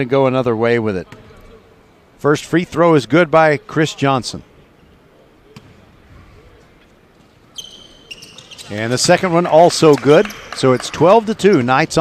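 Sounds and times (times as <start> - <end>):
faint gym ambience: 0.0 - 12.0
basketball bouncing on court floor: 8.1 - 11.0.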